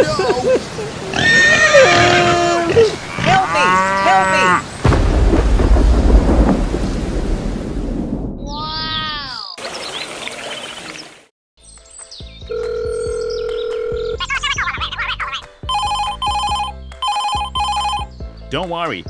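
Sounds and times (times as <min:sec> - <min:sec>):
rain: 0:00.0 - 0:03.6, 0:04.2 - 0:11.3
low thunder rumble: 0:04.8 - 0:09.2.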